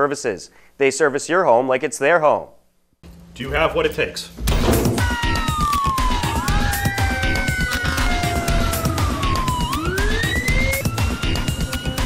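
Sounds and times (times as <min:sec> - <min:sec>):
background music with steady beat: 0:03.0 - 0:12.0
emergency vehicle sirens wailing: 0:05.0 - 0:12.0.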